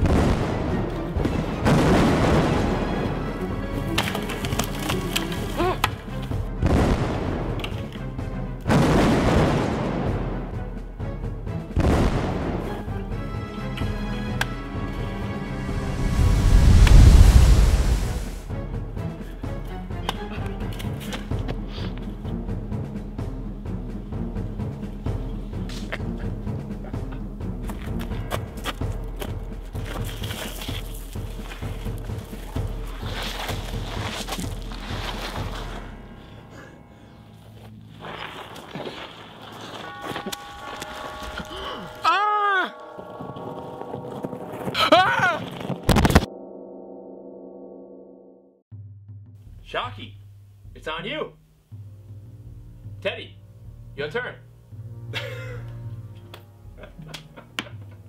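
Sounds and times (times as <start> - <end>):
deep boom: 0.0 - 3.0, 6.6 - 7.6, 8.7 - 10.6, 11.8 - 12.6
background music with steady beat: 0.0 - 16.1, 18.4 - 38.0, 48.7 - 58.0
ringing tones: 39.8 - 44.9, 45.5 - 48.6.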